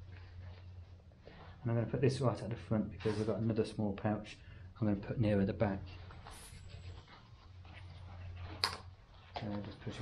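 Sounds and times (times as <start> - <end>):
low steady hum: 0.0 - 10.0
nylon strap rustling: 5.9 - 10.0.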